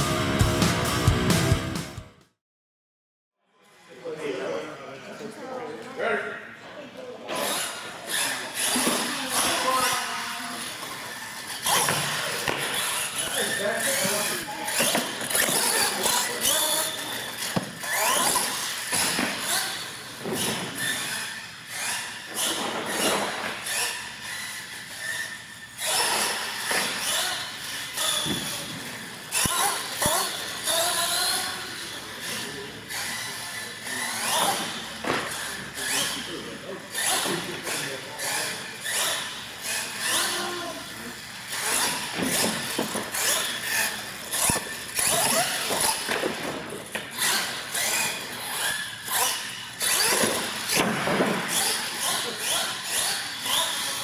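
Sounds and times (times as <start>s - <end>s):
toy truck motor whining: 7.3s - 54.0s.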